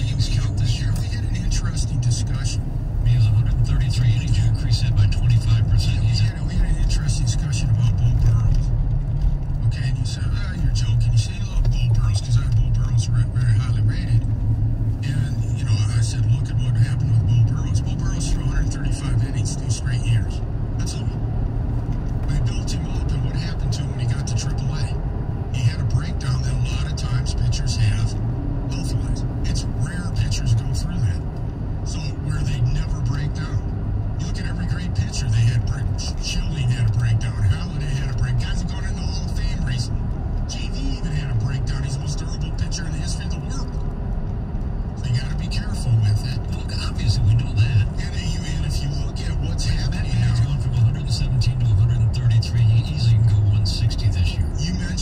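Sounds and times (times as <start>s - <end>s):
muffled voice talking: 0.0s - 8.8s, 9.6s - 14.3s, 15.0s - 21.2s, 22.2s - 25.0s, 25.6s - 43.8s, 45.0s - 55.0s
road and engine rumble: 0.0s - 55.0s.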